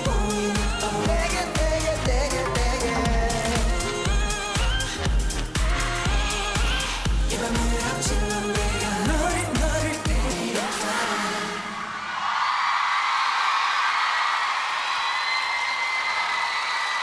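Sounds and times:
dance track with bass and vocals: 0.0s - 11.9s
audience cheering and screaming: 10.8s - 17.0s.

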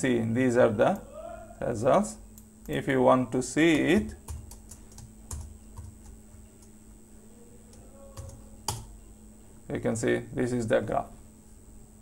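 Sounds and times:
faint steady hum: 0.0s - 12.0s
keyboard keystrokes: 3.7s - 6.7s.

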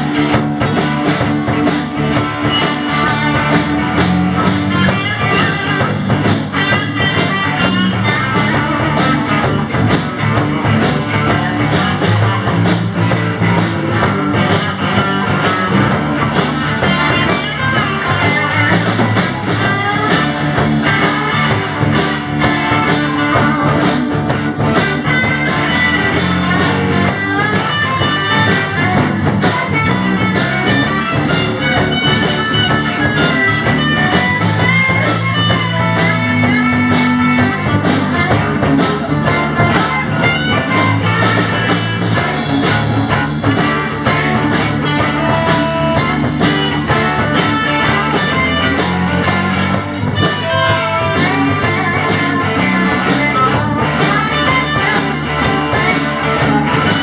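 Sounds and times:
rock band playing: 0.0s - 57.0s.

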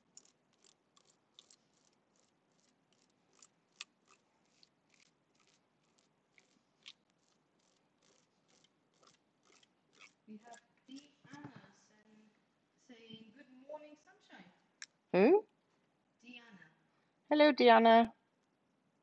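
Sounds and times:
scratchy stencil brush strokes: 0.0s - 11.5s.

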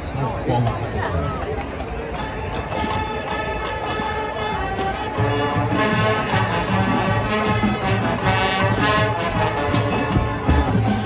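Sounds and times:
marching band playing: 1.8s - 11.0s
heavy low brass: 3.9s - 11.0s.

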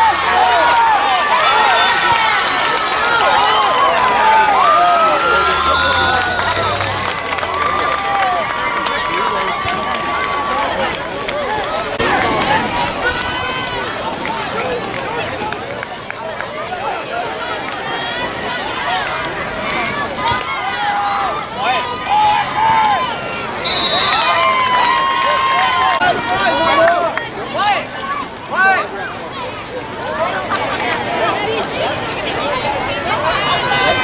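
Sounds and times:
long held shout: 0.0s - 10.8s
people shouting and cheering: 0.0s - 34.0s.

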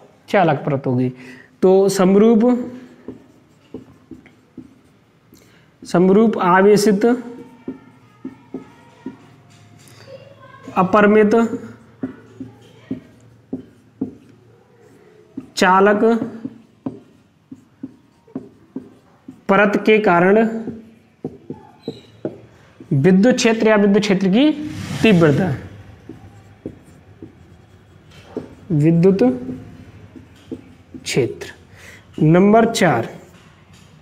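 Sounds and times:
marker pen writing on whiteboard: 1.6s - 34.0s.

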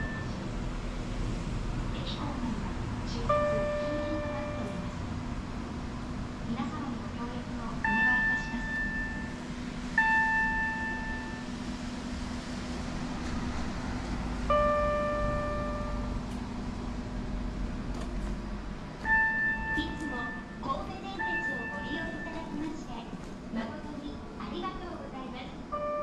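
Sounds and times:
electronic chime tones: 0.0s - 0.4s, 7.8s - 9.4s, 10.0s - 11.5s, 14.5s - 16.2s, 19.0s - 22.4s
steady low hum: 0.0s - 26.0s.

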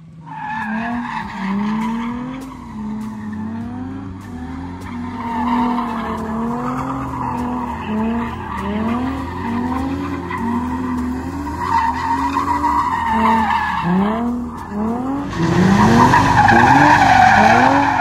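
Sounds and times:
car engine revving: 0.0s - 18.0s
tires squealing on asphalt: 0.1s - 18.0s.

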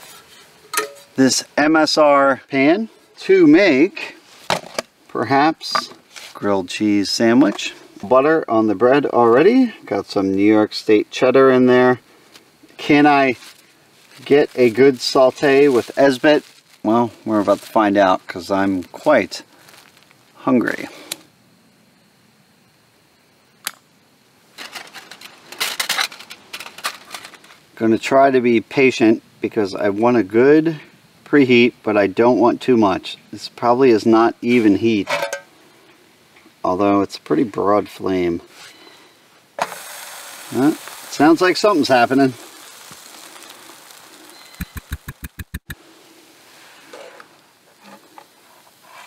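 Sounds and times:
sandwich sizzling in a pan: 38.9s - 45.5s
rapid thumps: 44.6s - 45.8s.

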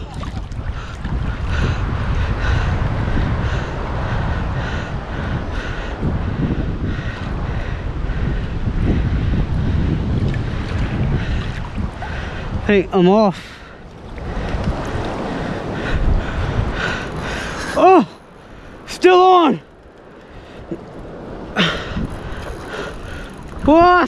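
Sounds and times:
sea water lapping: 0.0s - 24.0s
wind rumbling on microphone: 0.0s - 24.0s.

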